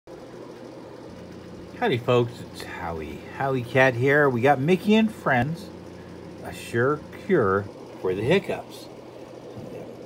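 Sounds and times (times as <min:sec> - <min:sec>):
faint mechanical hum: 0:00.1 - 0:10.0
man speaking: 0:01.8 - 0:05.8, 0:06.4 - 0:08.9.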